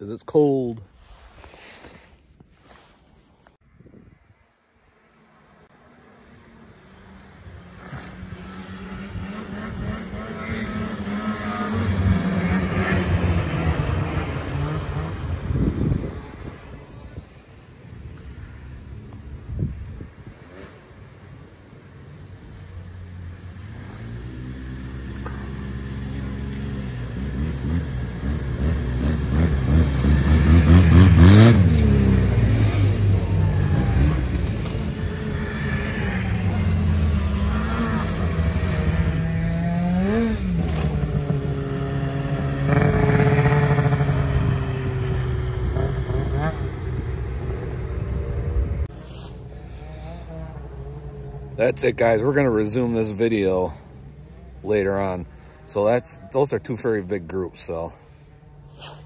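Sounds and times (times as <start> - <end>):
snowmobile engines passing: 0.2 - 3.5, 4.4 - 59.0.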